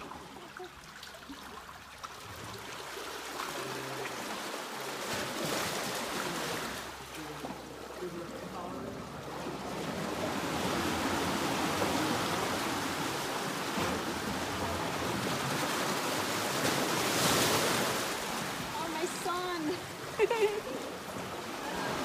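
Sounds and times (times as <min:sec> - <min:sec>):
waves crashing against rock walls: 0:02.2 - 0:22.0.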